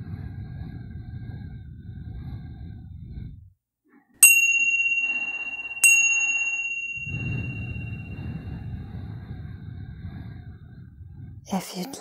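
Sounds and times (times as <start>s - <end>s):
chime ringing: 4.2s - 8.5s.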